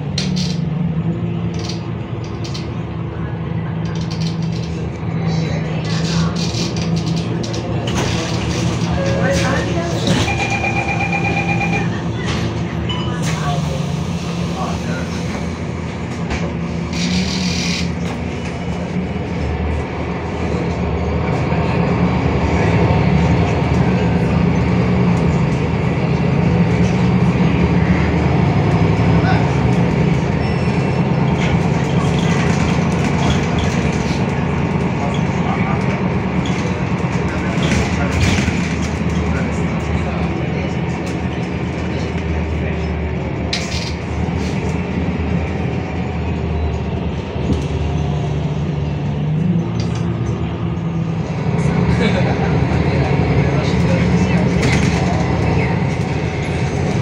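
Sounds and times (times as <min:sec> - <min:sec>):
bus diesel engine droning: 0:00.0 - 0:57.0
short beep: 0:09.0 - 0:11.9.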